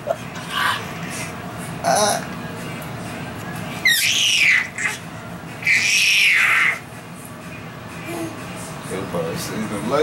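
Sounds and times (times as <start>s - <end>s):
baby squealing: 3.8s - 5.0s, 5.6s - 6.8s.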